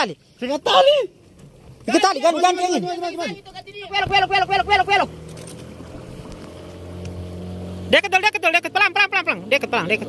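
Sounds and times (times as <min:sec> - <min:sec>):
boat engine idling: 0:00.0 - 0:10.0.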